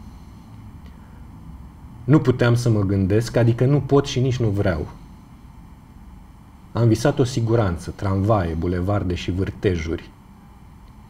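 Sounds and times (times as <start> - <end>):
low steady hum: 0.0 - 11.0
faint click: 10.8 - 11.0.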